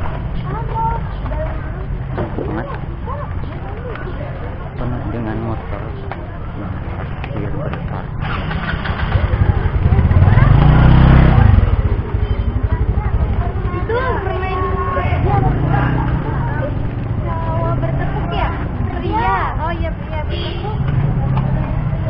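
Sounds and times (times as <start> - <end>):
chatter of many voices: 0.0 - 22.0
motorcycle engine passing: 5.6 - 22.0.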